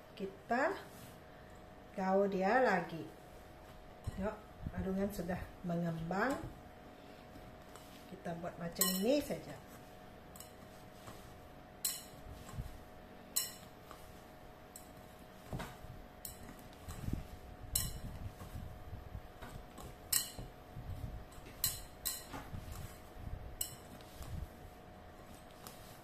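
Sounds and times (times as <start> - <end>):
dough thuds and squelches: 3.4 - 26.0.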